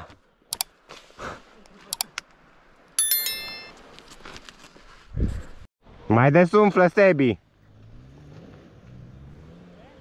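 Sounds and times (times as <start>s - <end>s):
notification bell chime: 3.0s - 3.7s.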